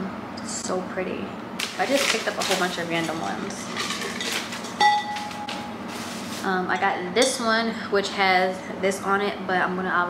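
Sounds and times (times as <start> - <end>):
glass vases clinking: 3.7 - 5.7.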